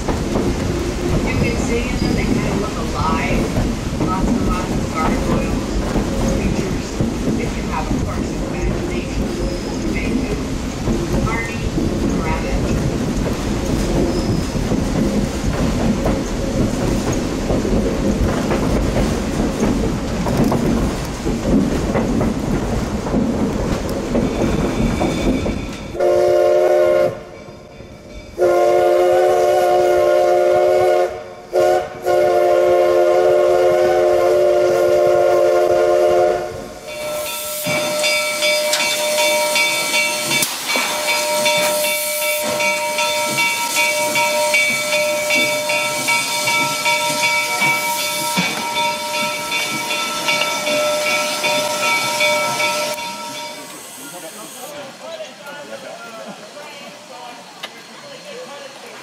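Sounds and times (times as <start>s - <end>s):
steam hissing: 0.0s - 59.0s
steam locomotive chime whistle: 24.6s - 54.7s.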